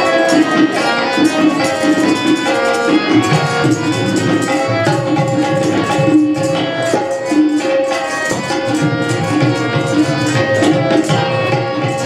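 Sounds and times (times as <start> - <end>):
hand drum beat: 0.0 - 12.0
sustained melodic tones: 0.0 - 12.0.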